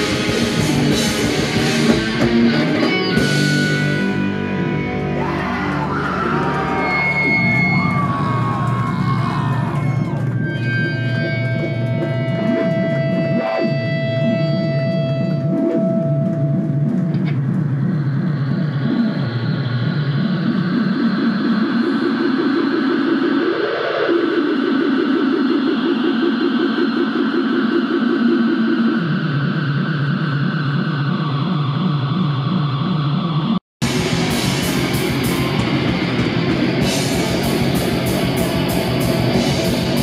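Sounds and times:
metal band playing: 0.0 - 17.6, 33.8 - 40.0
steady high tone: 0.0 - 40.0.

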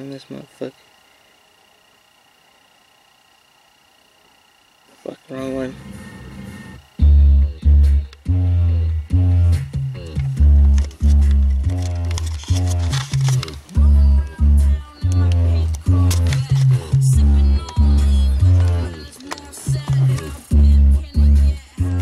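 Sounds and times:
bass-heavy song on car stereo: 5.6 - 22.0.

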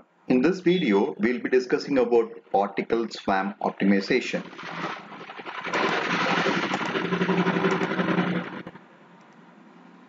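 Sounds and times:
engine humming: 4.6 - 9.3.

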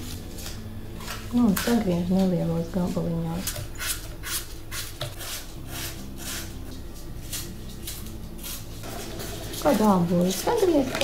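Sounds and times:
steady low hum: 0.0 - 11.0
knife cutting apple: 3.4 - 9.8.

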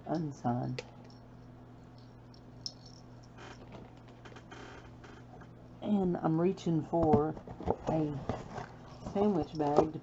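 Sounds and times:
metal chain clicking and rattling: 2.0 - 3.4.

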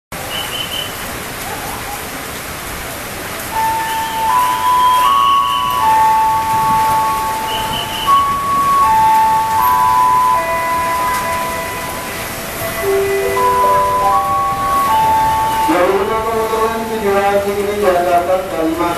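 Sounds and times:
heavy rain hissing: 0.2 - 18.9
slow melody of held notes: 3.5 - 17.2.

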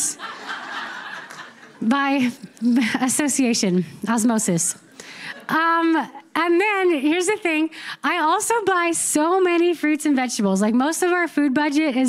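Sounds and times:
speech: 5.5 - 12.0.

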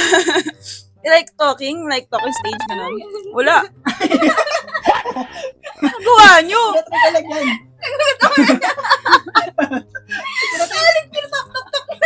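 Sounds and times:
young people laughing: 0.0 - 0.5, 3.8 - 12.0
people talking: 1.1 - 12.0.

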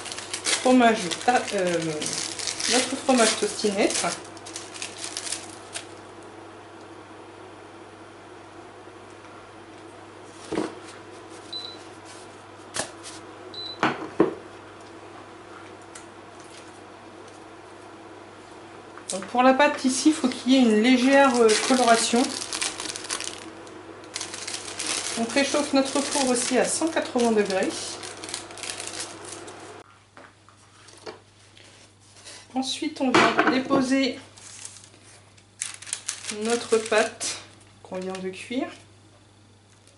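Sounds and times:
steady low hum: 0.0 - 33.1.

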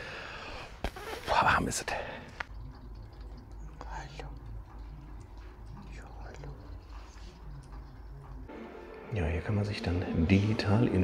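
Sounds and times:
low steady hum: 1.9 - 11.0
person whispering: 3.7 - 4.8.

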